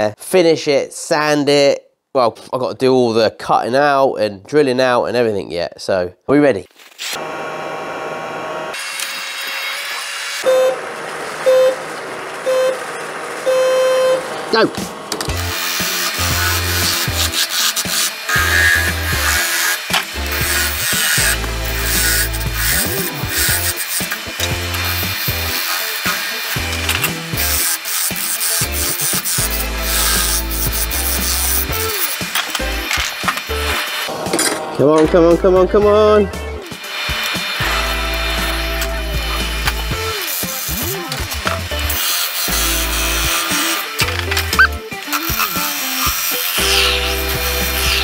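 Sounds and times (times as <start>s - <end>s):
background music with steady beat: 20.0s - 45.2s.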